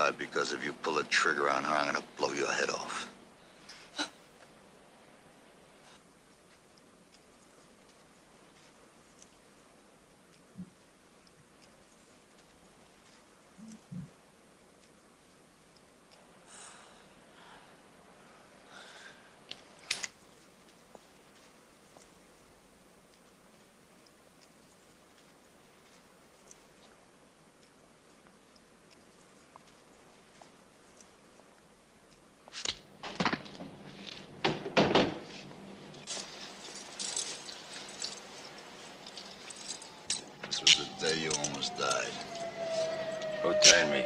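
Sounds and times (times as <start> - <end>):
low steady hum: 0.0 - 44.0
faint rustling: 35.2 - 43.4.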